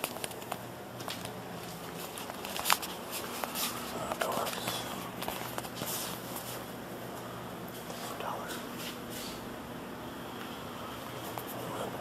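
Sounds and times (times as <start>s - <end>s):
footsteps on tiled floor: 0.0s - 6.7s
clicks and light rustles: 0.0s - 8.0s
steady low hum: 0.0s - 12.0s.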